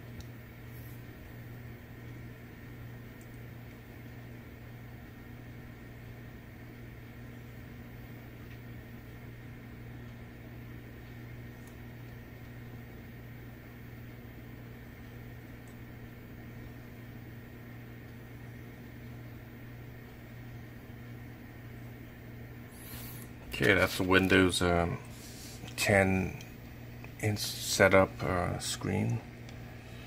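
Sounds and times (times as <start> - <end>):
computer cooling fans humming: 0.0 - 30.0.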